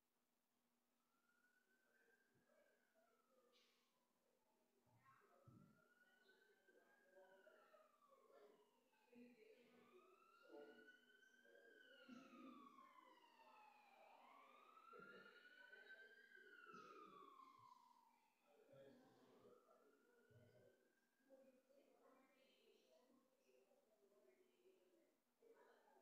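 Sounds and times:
faint siren wailing: 0:01.1 - 0:21.3
faint room murmur: 0:01.2 - 0:26.0.

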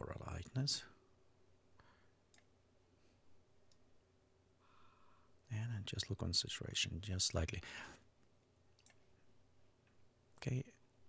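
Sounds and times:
faint room hum: 0:00.0 - 0:11.0
computer mouse clicks: 0:08.8 - 0:09.0.

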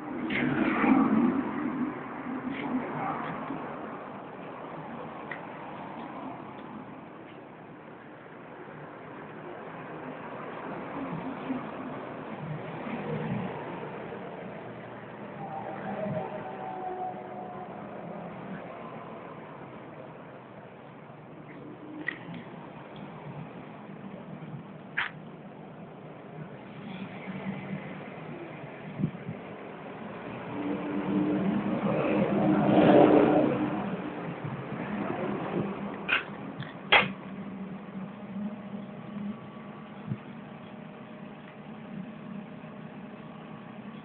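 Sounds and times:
vehicle engine and road noise: 0:00.0 - 0:44.0.

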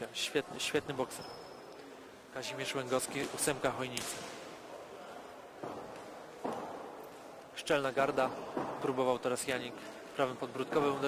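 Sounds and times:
sports hall room noise: 0:00.0 - 0:11.0.

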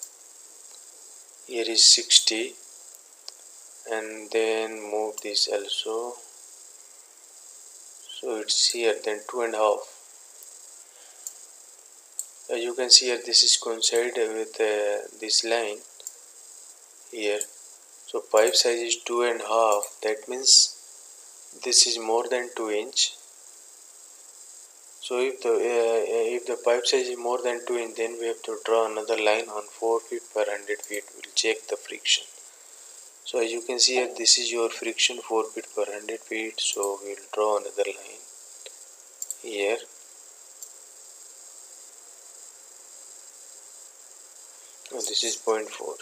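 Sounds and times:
faint hiss with high whine: 0:00.0 - 0:46.0.

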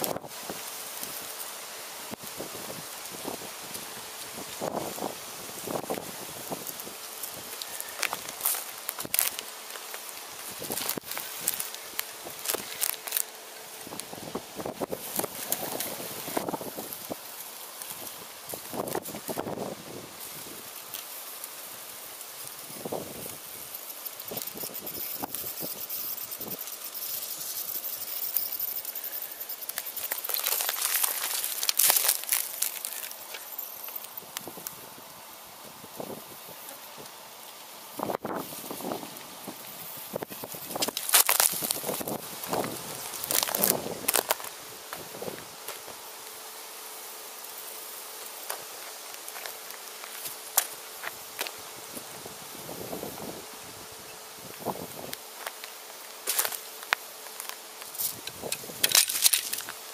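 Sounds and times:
dry leaves crackling and rustling: 0:00.0 - 0:35.0, 0:38.0 - 0:46.4, 0:48.1 - 0:53.1, 0:54.5 - 0:59.9
insects buzzing: 0:00.0 - 0:59.9
light crackles and clicks: 0:06.6 - 0:13.3, 0:27.8 - 0:34.8, 0:55.1 - 0:59.8.

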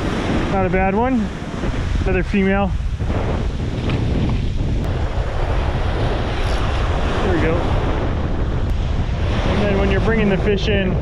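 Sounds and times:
breaking surf: 0:00.0 - 0:11.0
wind buffeting microphone: 0:00.0 - 0:11.0.

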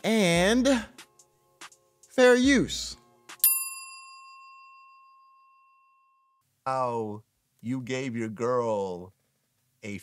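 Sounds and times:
bell-like ding: 0:03.4 - 0:06.4.

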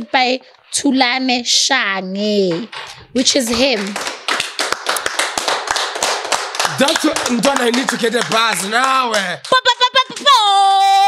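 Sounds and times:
people clapping: 0:02.5 - 0:11.0.

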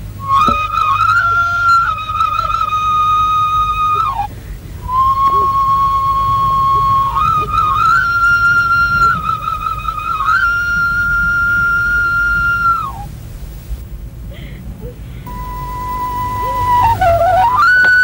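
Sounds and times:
solo flute playing: 0:00.0 - 0:13.3, 0:15.3 - 0:18.0.

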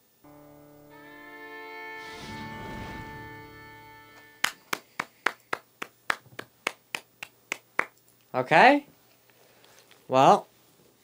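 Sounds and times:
person clapping: 0:04.4 - 0:08.0.

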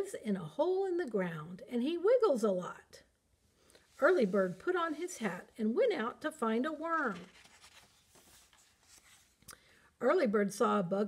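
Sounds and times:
book page rustling: 0:06.8 - 0:09.5.

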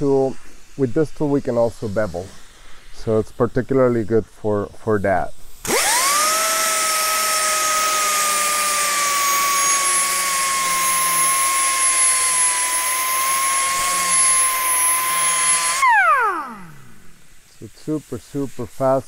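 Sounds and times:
air angle grinder whine: 0:05.6 - 0:17.4.

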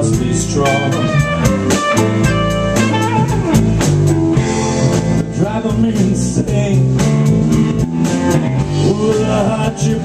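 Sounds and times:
live blues band playing: 0:00.0 - 0:10.0.

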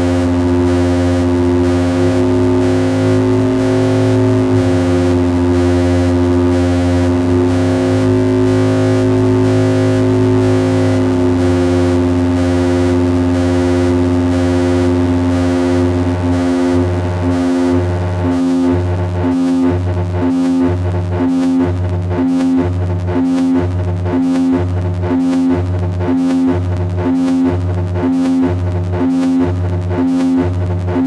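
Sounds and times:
synth drone chord: 0:00.0 - 0:28.6.

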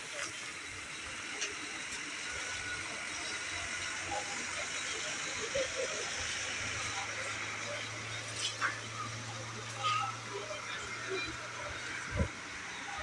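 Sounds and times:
idling diesel engine hum: 0:00.0 - 0:13.0
indistinct chatter of people: 0:00.0 - 0:13.0.

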